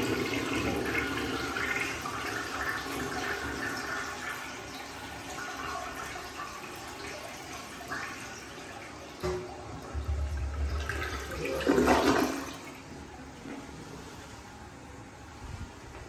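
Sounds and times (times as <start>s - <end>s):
toilet flushing: 0.0s - 15.3s.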